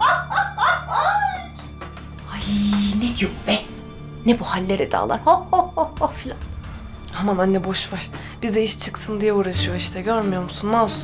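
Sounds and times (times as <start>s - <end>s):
soft background music: 0.0s - 11.0s
woman laughing: 5.2s - 6.3s.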